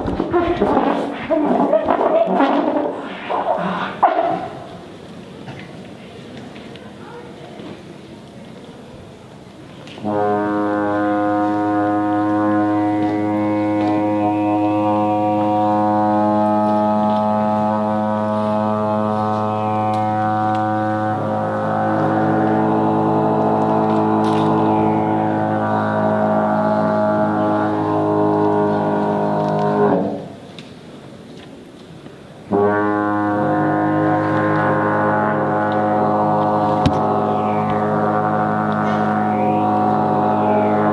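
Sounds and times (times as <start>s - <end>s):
trombone holding low note: 10.0s - 30.2s, 32.5s - 40.9s.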